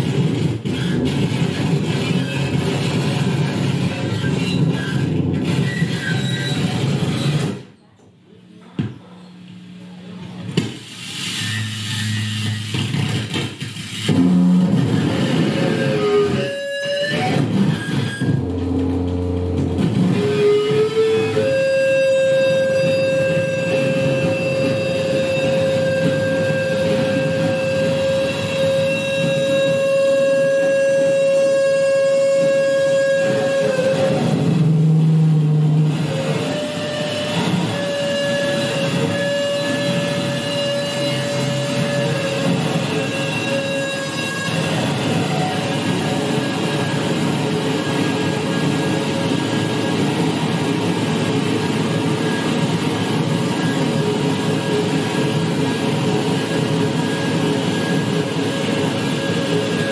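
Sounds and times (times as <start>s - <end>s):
droning electronic noise music: 0.0s - 7.6s, 10.8s - 59.9s
steady high electronic tone: 14.0s - 59.9s.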